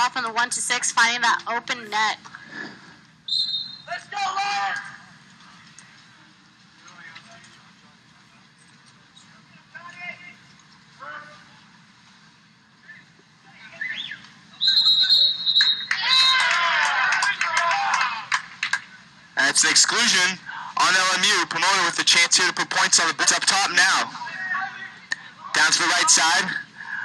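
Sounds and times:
low background hum: 0.0 - 27.0
referee's whistle blast: 3.3 - 3.9, 14.0 - 16.4
faint distant voices: 3.9 - 15.0
crowd shouting: 15.8 - 18.4.

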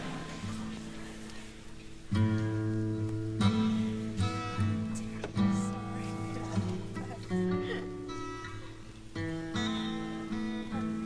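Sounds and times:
acoustic guitar strummed chords: 0.0 - 11.0.

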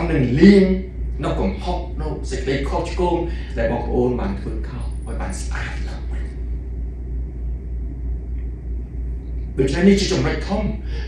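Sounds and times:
man talking: 0.0 - 6.4, 9.6 - 11.0
low room rumble: 0.0 - 11.0.

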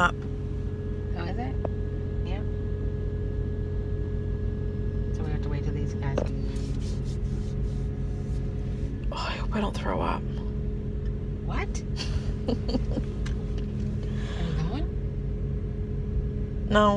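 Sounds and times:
low engine hum: 0.0 - 16.9.

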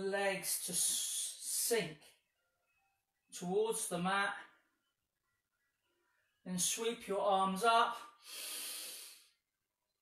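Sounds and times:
man breathing: 8.2 - 9.4.

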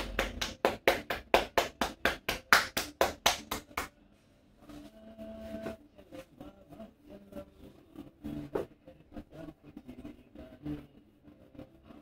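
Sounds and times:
hands slapping scalp: 0.0 - 4.0.

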